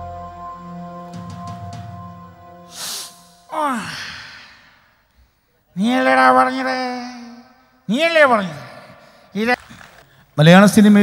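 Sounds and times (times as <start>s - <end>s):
man sighing: 2.7s - 5.0s.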